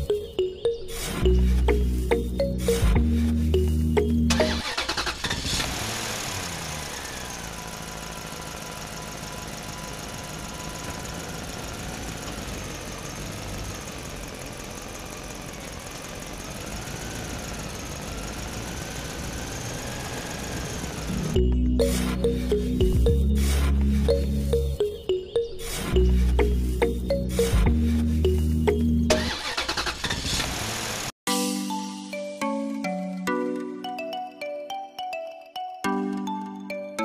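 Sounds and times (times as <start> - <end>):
background music: 0.0 - 5.1, 21.1 - 29.6, 31.3 - 37.0
engine running: 0.0 - 31.2.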